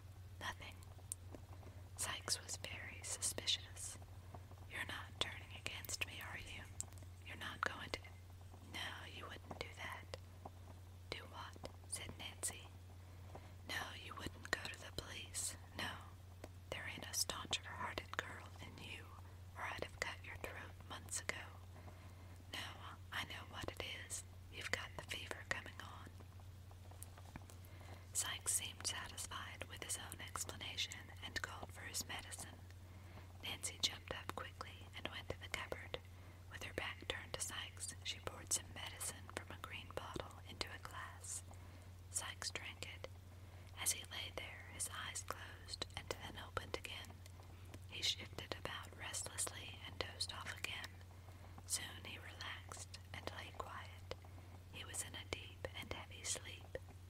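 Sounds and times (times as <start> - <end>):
steady low hum: 0.0 - 57.0
person whispering: 0.4 - 0.8, 2.0 - 4.0, 4.7 - 8.1, 8.7 - 10.2, 11.1 - 12.7, 13.7 - 16.1, 16.7 - 21.6, 22.5 - 26.1, 28.2 - 32.6, 33.4 - 41.4, 42.1 - 43.1, 43.8 - 47.2, 47.9 - 51.0, 51.7 - 54.2, 54.8 - 56.9.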